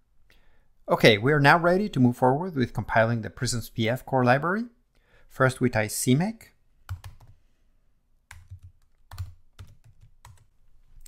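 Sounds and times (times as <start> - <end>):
computer keyboard typing: 6.9 - 7.4, 8.3 - 10.5.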